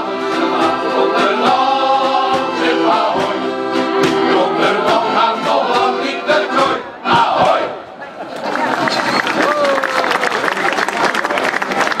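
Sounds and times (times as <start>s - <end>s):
men's choir singing: 0.0s - 7.8s.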